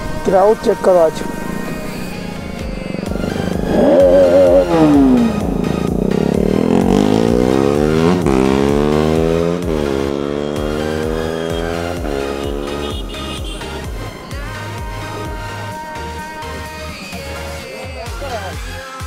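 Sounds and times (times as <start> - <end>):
motorcycle engine revving: 0.0 - 18.6
background music with beat: 2.1 - 19.0.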